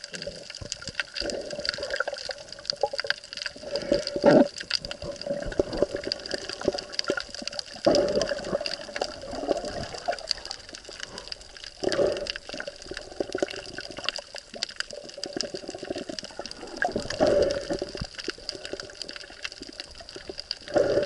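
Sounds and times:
fine crackle of clicks: 0:00.0 - 0:21.0
water swirling and sloshing: 0:00.0 - 0:21.0.

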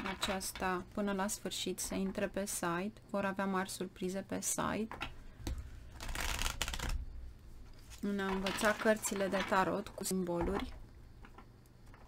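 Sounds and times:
cards riffle-shuffling: 0:05.9 - 0:07.0.

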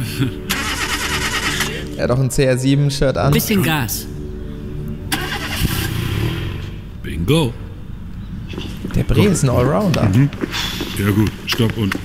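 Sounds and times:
car engine revving: 0:05.1 - 0:07.0.

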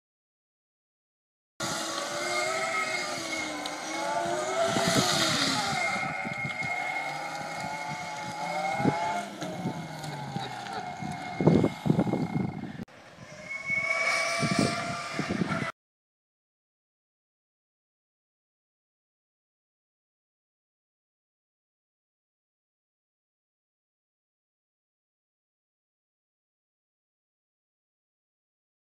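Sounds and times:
electric motor whining: 0:01.6 - 0:12.8.

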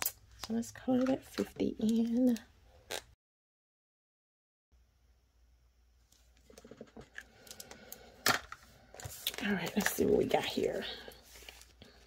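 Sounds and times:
card and marker handling: 0:06.1 - 0:12.0.

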